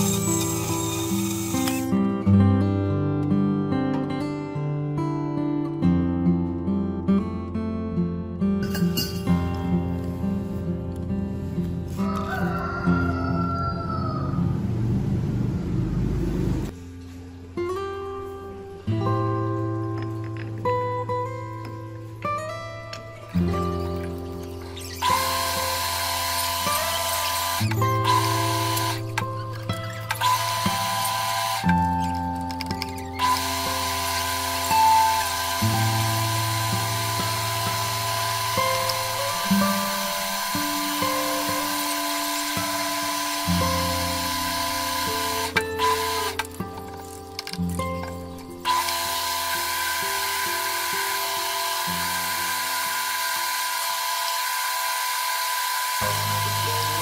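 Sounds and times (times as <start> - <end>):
metal lathe whining: 0.0 - 1.9, 24.8 - 29.0, 29.9 - 31.9, 32.8 - 46.5, 48.7 - 57.0.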